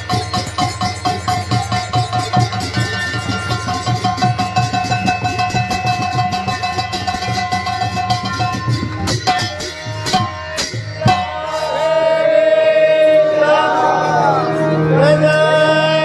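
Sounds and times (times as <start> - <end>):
fast drum beat: 0.0 - 11.7
harmonium melody: 0.0 - 16.0.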